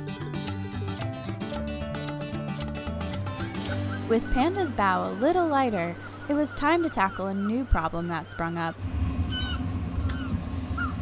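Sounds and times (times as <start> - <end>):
wind rumble on microphone: 8.8 - 11.0.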